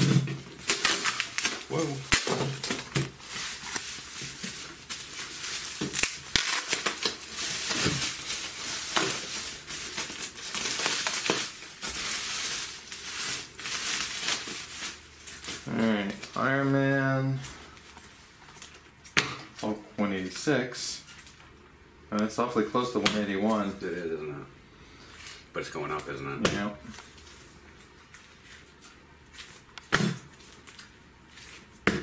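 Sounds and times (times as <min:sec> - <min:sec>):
bubble wrap crinkling: 0:00.0 - 0:20.4, 0:26.8 - 0:31.8.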